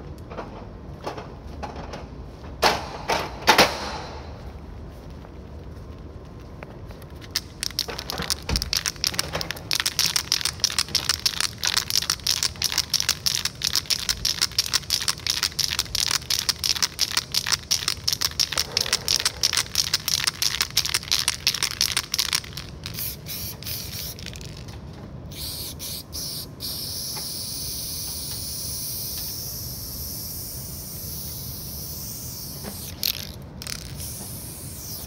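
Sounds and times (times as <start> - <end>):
spray paint can hissing bursts: 7.2 - 24.7, 25.3 - 35.0.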